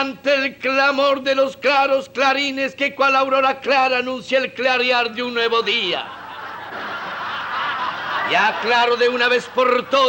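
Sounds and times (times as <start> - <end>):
audience laughing: 5.8 - 10.0.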